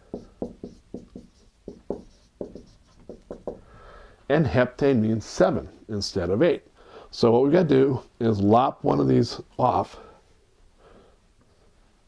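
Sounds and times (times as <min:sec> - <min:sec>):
marker drawing on whiteboard: 0:00.0 - 0:03.7.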